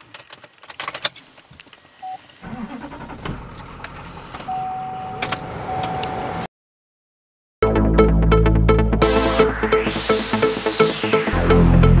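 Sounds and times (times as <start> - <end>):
truck engine starting and idling: 2.4 - 6.4
steady tone: 7.6 - 12.0.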